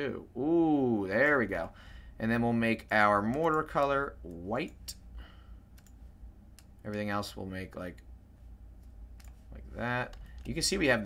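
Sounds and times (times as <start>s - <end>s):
computer mouse clicks: 5.7s - 7.1s, 8.8s - 9.4s.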